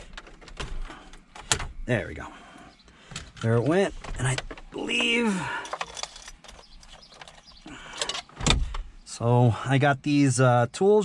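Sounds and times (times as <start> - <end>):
hands rummaging in plastic glovebox: 3.1 - 8.4.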